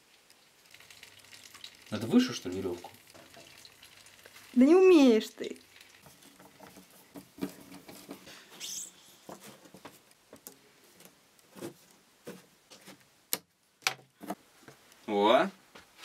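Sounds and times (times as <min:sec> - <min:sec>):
twine rustling: 0:00.0 - 0:13.2
small clicks and scrapes: 0:02.9 - 0:04.6, 0:05.6 - 0:12.0.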